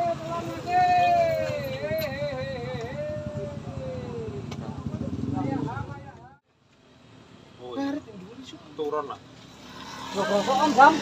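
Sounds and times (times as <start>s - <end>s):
motorcycle engine running: 1.1s - 6.3s.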